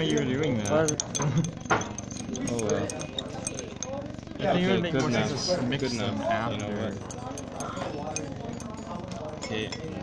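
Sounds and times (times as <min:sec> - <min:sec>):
glass rod clinking in beaker: 0:00.0 - 0:04.0, 0:05.8 - 0:10.0
murmur of voices: 0:00.0 - 0:10.0.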